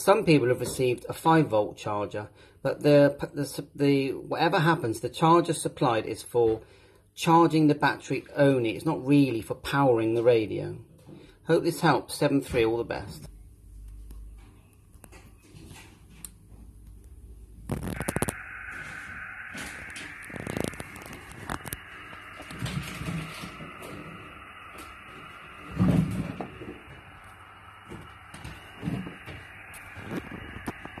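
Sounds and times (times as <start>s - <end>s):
radio speaker hissing: 16.9s - 31.0s.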